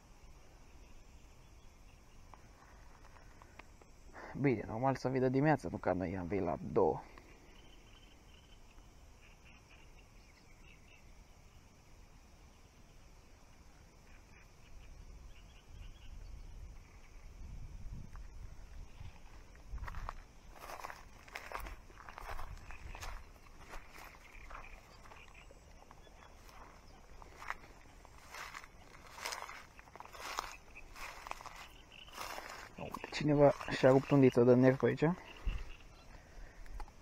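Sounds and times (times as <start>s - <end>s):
footsteps through dry grass: 18.1s - 35.9s
reeds rustling: 18.6s - 35.8s.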